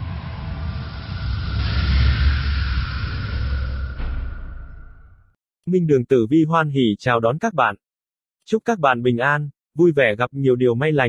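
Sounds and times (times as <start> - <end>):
deep rumble: 0.0 - 5.4
rushing whoosh: 0.0 - 5.4.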